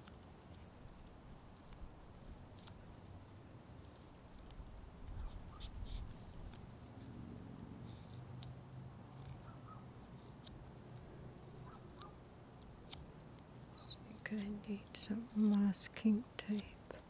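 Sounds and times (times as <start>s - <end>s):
fingernail scratching paper sticker: 0.0s - 2.8s, 3.8s - 7.1s, 7.9s - 10.8s, 11.4s - 16.8s.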